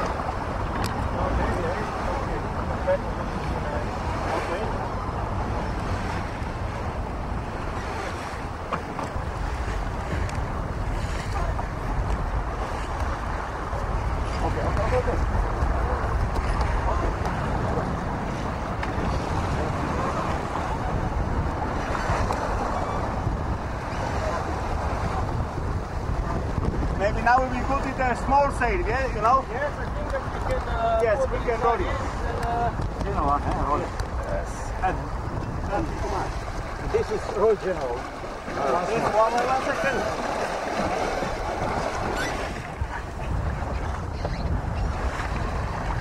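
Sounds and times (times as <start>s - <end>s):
sea water rushing along hull: 0.0s - 46.0s
wind buffeting microphone: 0.0s - 46.0s.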